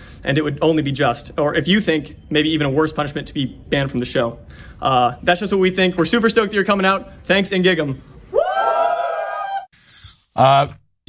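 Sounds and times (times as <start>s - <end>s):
person cheering whoop: 8.3s - 9.7s.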